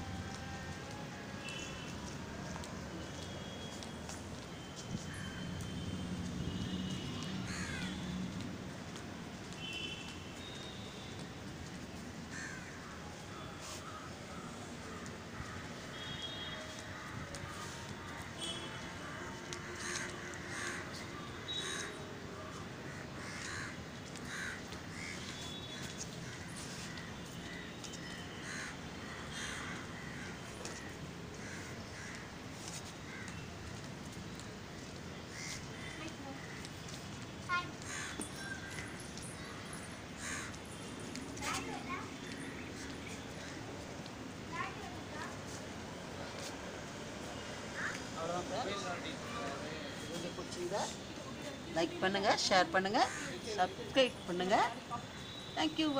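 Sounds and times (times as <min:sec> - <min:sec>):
steady background noise: 0:00.0 - 0:55.9
bird cawing harshly: 0:23.0 - 0:25.2, 0:37.5 - 0:40.6, 0:47.8 - 0:48.0.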